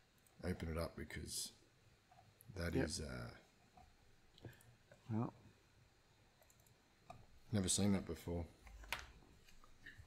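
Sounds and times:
man speaking: 2.5 - 3.5
faint computer mouse clicks: 6.4 - 7.2.

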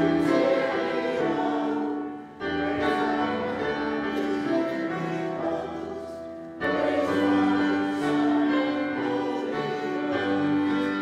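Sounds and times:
church music with voices singing: 0.0 - 11.0.

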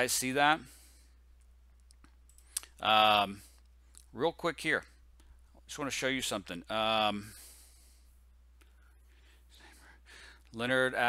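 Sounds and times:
man talking: 0.0 - 0.8, 2.8 - 5.0, 5.7 - 7.4, 10.5 - 11.0.

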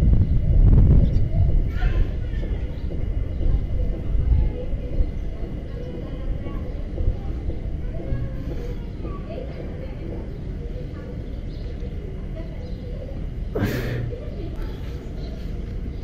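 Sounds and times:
faint indistinct voices: 0.0 - 16.0
steady low rumble: 0.0 - 16.0.

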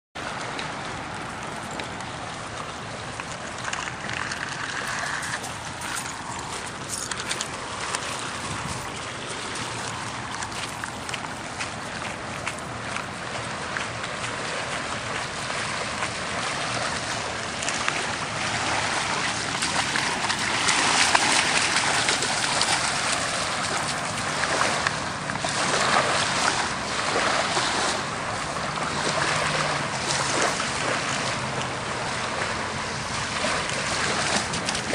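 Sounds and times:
waves washing onto beach: 0.2 - 34.9
wind on microphone: 3.6 - 12.4
footsteps crunching on shells: 3.7 - 13.2.

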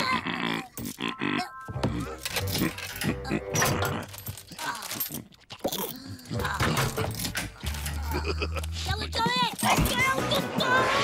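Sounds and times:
cartoon background music: 1.0 - 4.2, 5.7 - 11.0.

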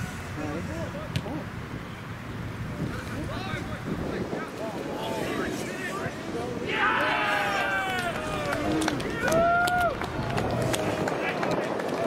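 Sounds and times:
open-air background noise: 0.0 - 12.0
players shouting: 4.7 - 11.8.

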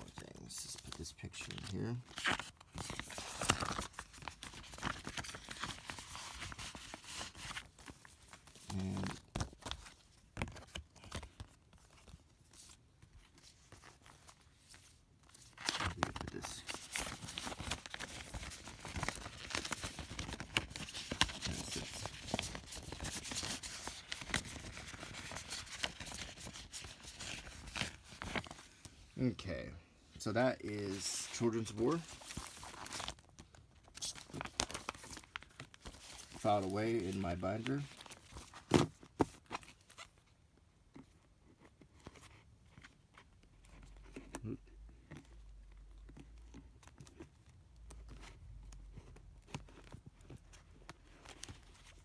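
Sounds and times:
paper and plastic sleeves rustling: 0.0 - 52.0.

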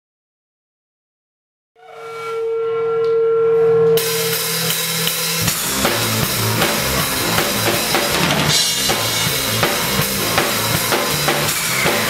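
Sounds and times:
crashing cymbals: 4.0 - 12.0
drum kit beat: 4.0 - 12.0.

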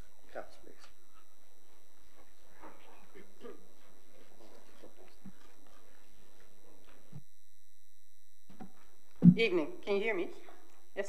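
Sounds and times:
electrical hum and whine: 0.0 - 11.0
soft low thumps: 7.2 - 9.6.

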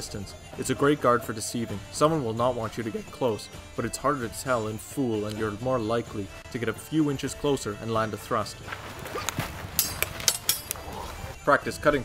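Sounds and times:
steel swords clashing: 9.7 - 11.1.

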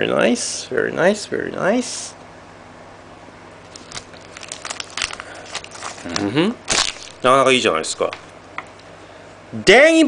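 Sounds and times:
foil wrapper crinkling: 3.6 - 8.2
foil tearing open: 3.7 - 7.4.

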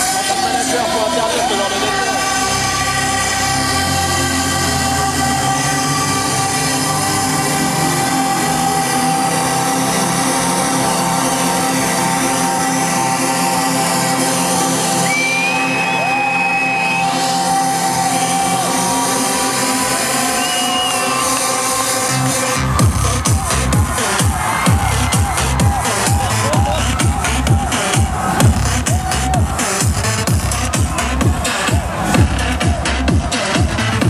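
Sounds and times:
electronic dance music: 0.0 - 34.0.

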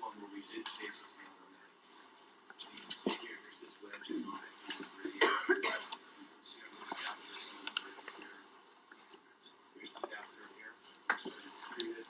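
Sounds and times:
faint indistinct voices: 0.0 - 12.0
person coughing: 5.0 - 6.0.

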